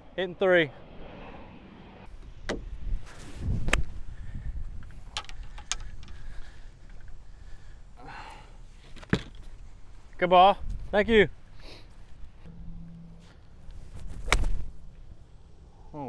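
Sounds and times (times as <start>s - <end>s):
low rumble: 0.0s - 5.5s, 12.2s - 15.9s.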